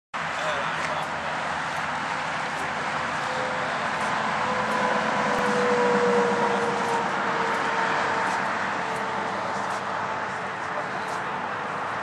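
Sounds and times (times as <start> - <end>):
motor vehicle running: 0.2 - 12.0.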